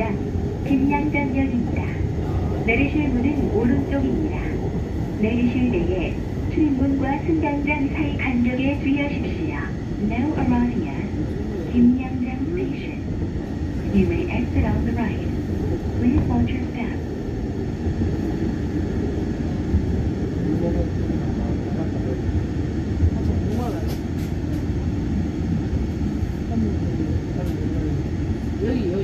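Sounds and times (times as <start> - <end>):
train wheels rumbling on rail: 0.0 - 29.0.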